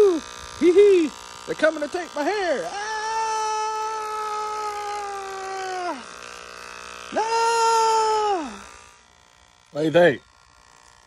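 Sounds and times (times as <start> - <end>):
man wailing: 2.4 - 6.1, 7.1 - 8.6.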